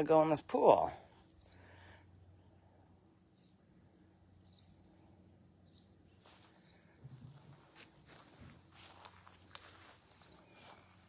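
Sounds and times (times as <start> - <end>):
soft rustling and scuffing: 6.2 - 11.0.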